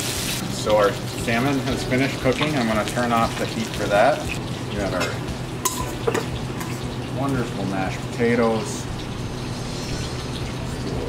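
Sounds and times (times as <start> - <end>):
fish sizzling in a skillet: 0.0 - 11.0.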